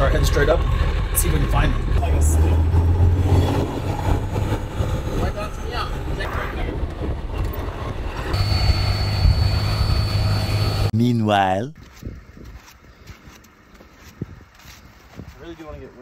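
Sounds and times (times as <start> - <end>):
diesel engine drone: 0.0 - 11.0
thin high whine: 8.3 - 10.9.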